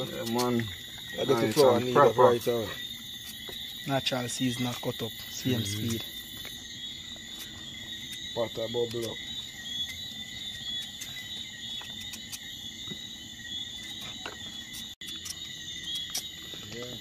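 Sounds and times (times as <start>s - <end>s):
night insects calling: 0.0s - 17.0s.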